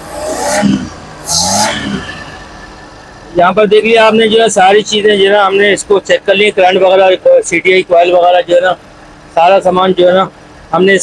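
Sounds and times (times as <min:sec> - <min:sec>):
engine revving: 0:00.0 - 0:03.1.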